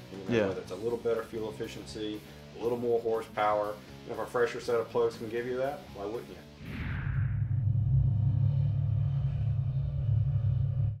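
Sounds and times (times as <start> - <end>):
deep steady rumble: 6.6 - 11.0.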